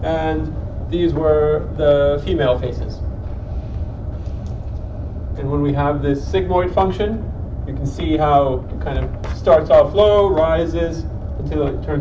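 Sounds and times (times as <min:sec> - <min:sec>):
low hum: 0:00.0 - 0:12.0
low rumble of room noise: 0:00.0 - 0:12.0.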